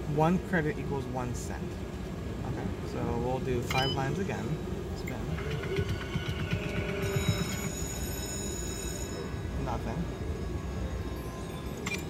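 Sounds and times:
slot machine electronic tones: 0:03.6 - 0:12.0.

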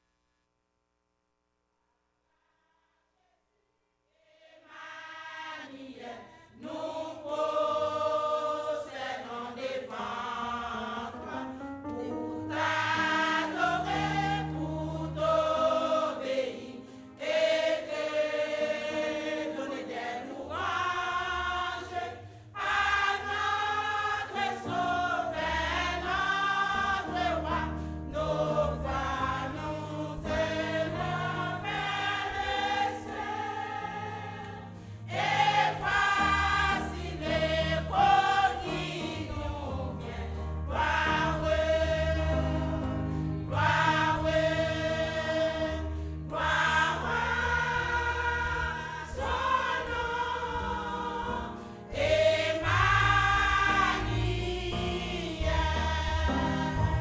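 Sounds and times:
women's choir singing: 0:04.2 - 0:57.0.

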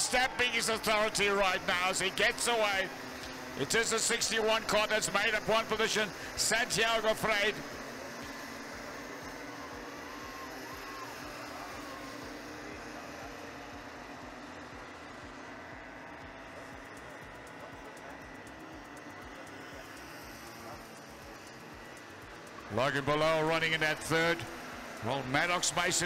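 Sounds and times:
distant kart engines droning: 0:00.0 - 0:26.0.

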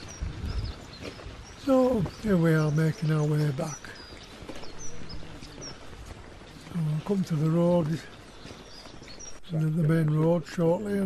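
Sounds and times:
footsteps on a path: 0:00.0 - 0:11.0
rain: 0:00.0 - 0:11.0
small birds chirping: 0:00.0 - 0:11.0.

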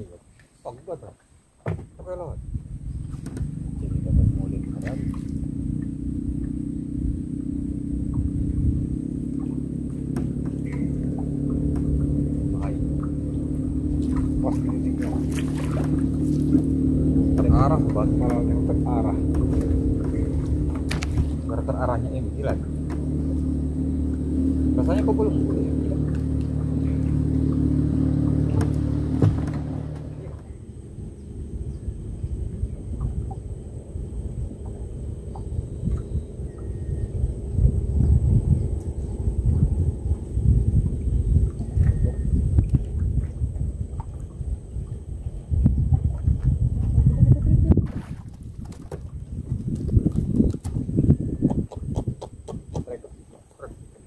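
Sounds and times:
low uneven rumble: 0:00.0 - 0:54.0
boat engine running: 0:01.8 - 0:54.0.

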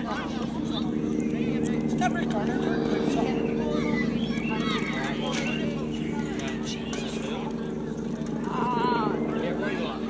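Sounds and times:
distant voices shouting: 0:00.0 - 0:10.0
steady low hum: 0:00.0 - 0:10.0.

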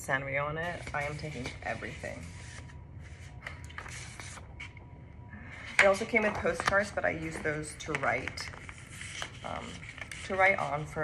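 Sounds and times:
low steady hum: 0:00.0 - 0:11.0
paper sheets rustling: 0:00.6 - 0:04.7, 0:05.8 - 0:11.0.

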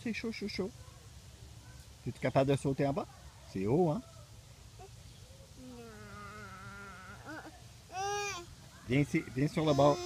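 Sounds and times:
insect buzzing: 0:05.6 - 0:07.5.

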